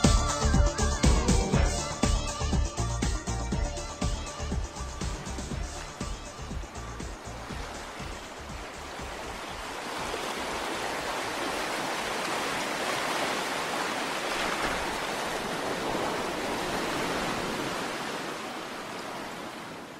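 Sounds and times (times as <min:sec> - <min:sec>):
rushing water: 0:00.0 - 0:19.9.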